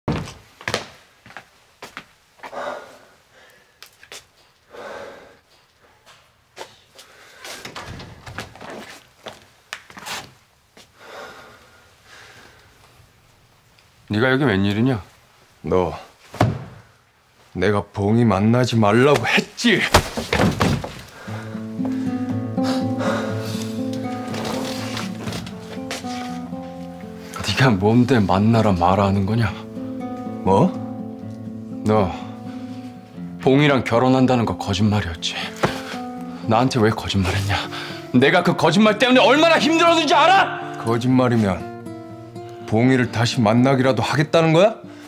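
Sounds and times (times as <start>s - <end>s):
footsteps on hard floor: 0.1s - 2.5s, 23.5s - 27.1s, 35.6s - 36.0s
body thud against sofa: 16.3s - 16.8s, 20.0s - 21.1s
door knocked open: 20.1s - 21.0s
background music with low notes: 21.2s - 45.0s.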